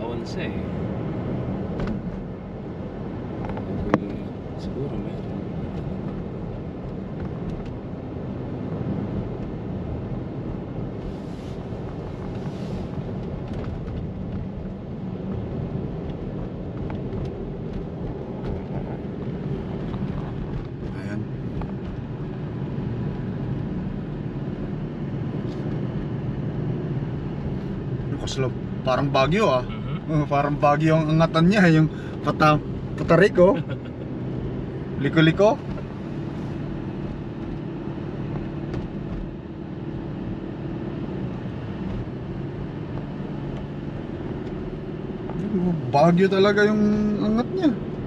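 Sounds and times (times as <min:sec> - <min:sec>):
car road and engine noise: 0:00.0 - 0:48.0.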